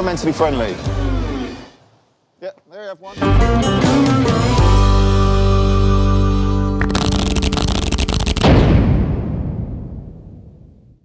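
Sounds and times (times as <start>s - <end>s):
fast run of sharp clicks: 6.8s - 8.5s.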